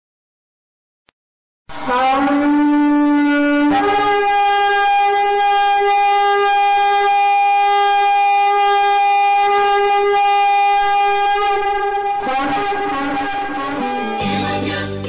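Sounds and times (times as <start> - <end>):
long horn blast: 1.7 - 15.0.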